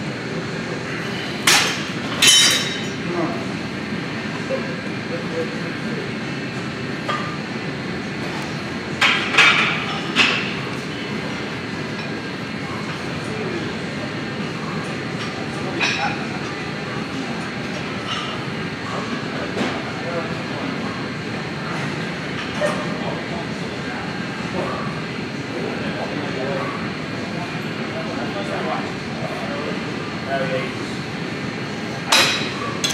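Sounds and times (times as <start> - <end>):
gym machinery: 0.0 - 32.9.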